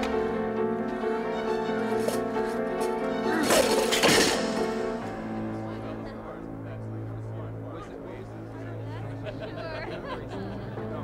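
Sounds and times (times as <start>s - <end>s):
orchestral film music with held chords: 0.0s - 11.0s
crash and clatter: 3.4s - 5.0s.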